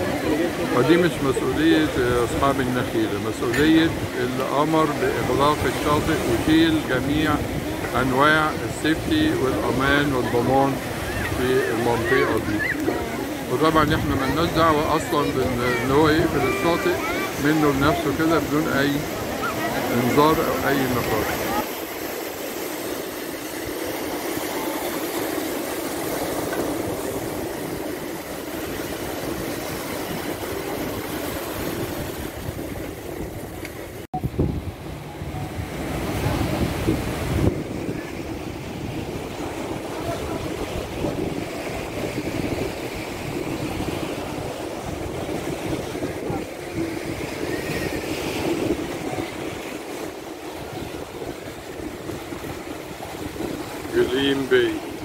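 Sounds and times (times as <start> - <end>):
sea waves breaking: 0.0 - 55.0
wind buffeting microphone: 4.9 - 18.2, 18.9 - 55.0.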